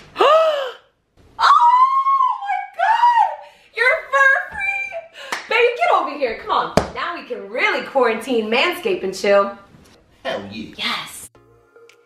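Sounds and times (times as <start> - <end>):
woman shrieking: 1.4 - 3.4.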